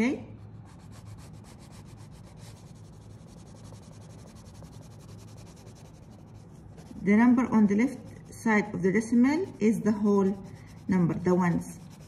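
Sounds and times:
colored pencil scratching on paper: 0:00.4 - 0:12.0.

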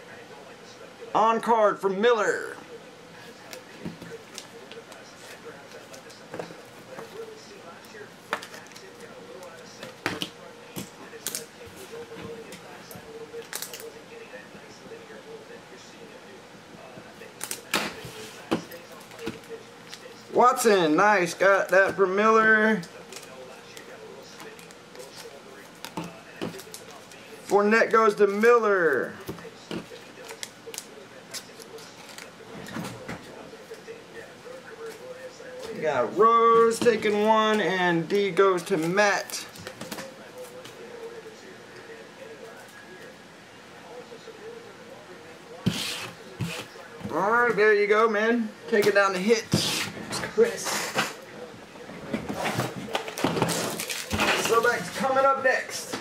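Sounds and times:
room murmur: 0:00.0 - 0:56.0.

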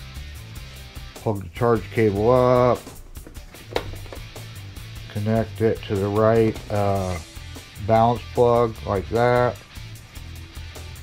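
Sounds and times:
plastic plug connectors handled: 0:03.2 - 0:04.3.

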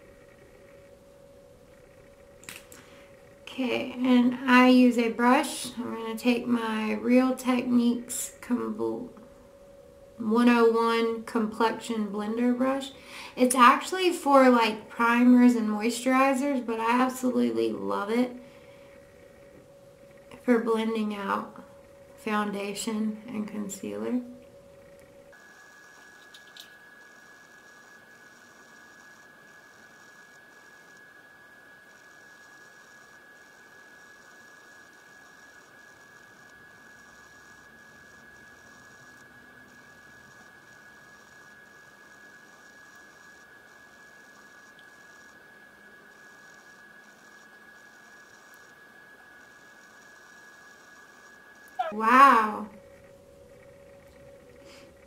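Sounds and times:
high-pitched electronic tone: 0:51.8 - 0:54.5.

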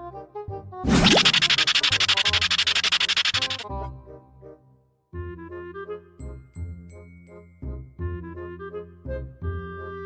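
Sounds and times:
rapid buzzing rattle effect: 0:00.9 - 0:03.6
background music: 0:03.3 - 0:10.0.

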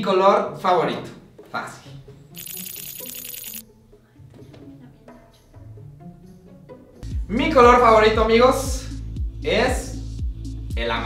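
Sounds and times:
quiet background music: 0:00.0 - 0:11.0
jingling rattle sound effect: 0:02.4 - 0:03.6.

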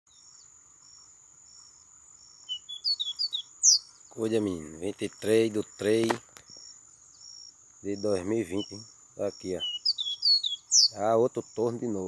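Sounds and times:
bird singing whistled notes: 0:00.1 - 0:04.5, 0:05.1 - 0:11.9.

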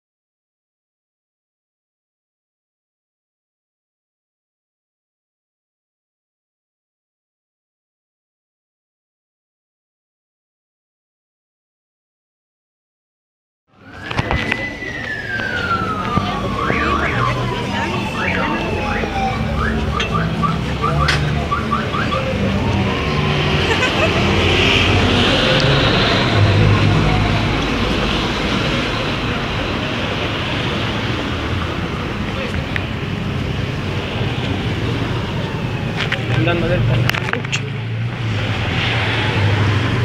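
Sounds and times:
crowd on foot: 0:13.7 - 0:40.0
street traffic: 0:13.7 - 0:40.0
siren winding down: 0:13.8 - 0:29.6.

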